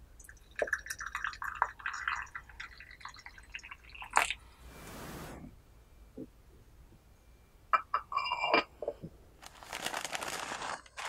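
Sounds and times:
water trickling into teapot: 0:00.2 - 0:04.4
soft hiss: 0:04.3 - 0:06.2.

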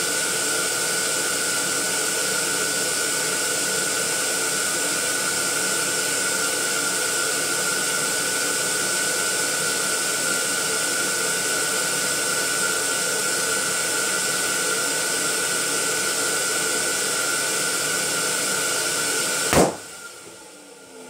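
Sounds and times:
electric air pump whining: 0:00.0 - 0:21.0.

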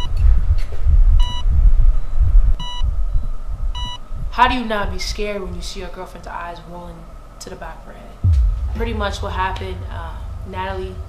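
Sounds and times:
loud low rumble: 0:08.2 - 0:11.0.

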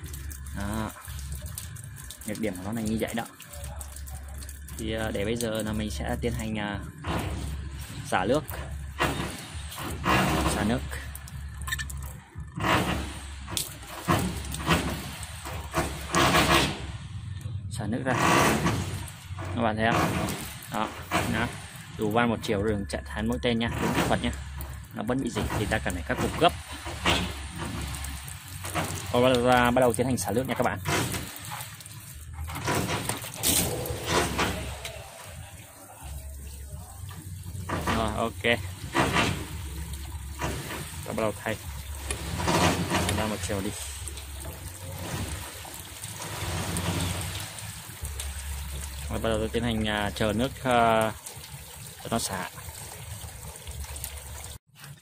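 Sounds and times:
water splashing on metal roof: 0:00.0 - 0:17.4, 0:18.0 - 0:55.0
low steady rumble: 0:00.0 - 0:54.6
knocks and clatter of pipe fittings: 0:30.6 - 0:35.0, 0:37.0 - 0:45.5.

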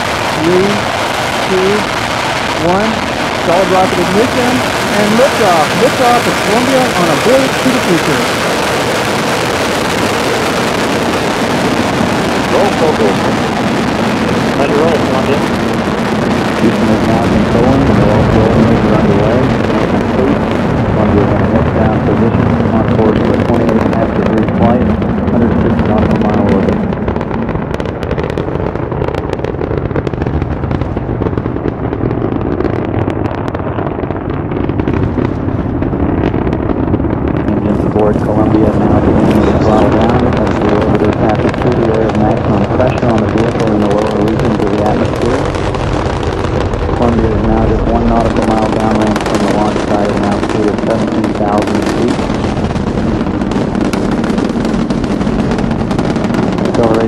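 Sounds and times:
rocket launch rumble with crackle: 0:00.0 - 0:57.0
voices: 0:00.2 - 0:08.6, 0:12.4 - 0:13.5, 0:14.5 - 0:15.6, 0:16.5 - 0:26.8, 0:37.4 - 0:45.5, 0:47.0 - 0:52.4, 0:56.3 - 0:57.0.

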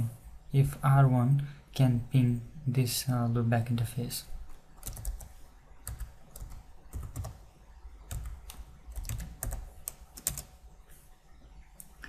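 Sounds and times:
computer keyboard keystrokes: 0:04.8 - 0:07.4, 0:08.1 - 0:10.5.

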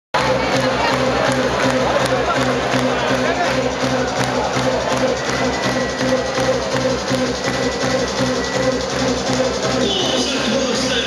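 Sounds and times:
audience noise: 0:00.2 - 0:11.0
repeating bass line: 0:00.2 - 0:11.0.

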